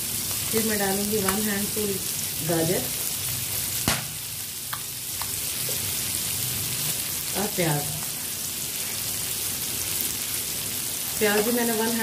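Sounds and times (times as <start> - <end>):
oil sizzling in a pan: 0.0 - 12.0
onion dropped into pan: 3.8 - 4.2.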